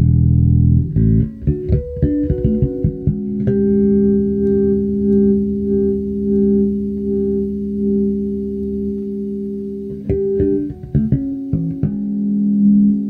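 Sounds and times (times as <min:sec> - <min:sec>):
electric bass chord ringing: 0:00.0 - 0:13.0.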